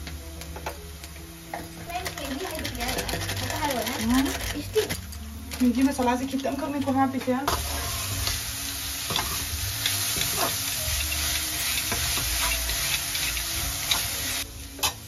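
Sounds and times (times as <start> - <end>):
cabbage sizzling in a wok: 0.0 - 15.0
spatula scraping a wok: 9.1 - 15.0.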